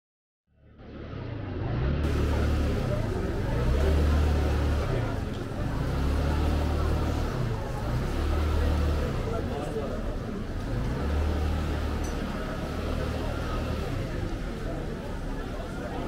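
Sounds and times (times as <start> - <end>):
outdoor hubbub: 0.5 - 16.0
voices of passers-by: 0.5 - 16.0.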